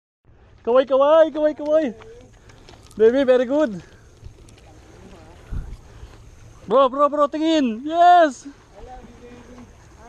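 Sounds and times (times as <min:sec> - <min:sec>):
wind buffeting microphone: 0:04.2 - 0:06.6.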